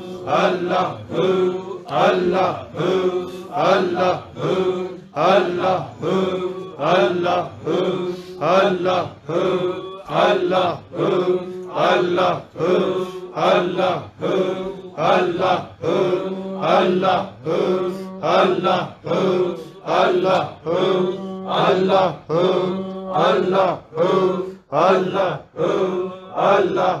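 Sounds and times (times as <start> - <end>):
men chanting together: 0.0 - 27.0.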